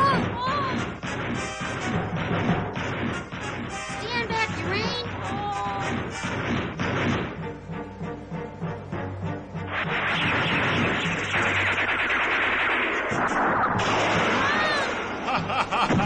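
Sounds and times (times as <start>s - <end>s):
laser blast and explosion effect: 0.0s - 3.8s, 5.8s - 7.3s, 9.7s - 16.0s
dramatic cartoon music: 0.0s - 16.0s.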